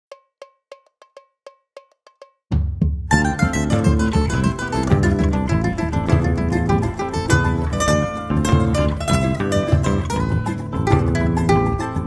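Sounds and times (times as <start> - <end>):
pitched percussion hits: 2.5 - 12.0.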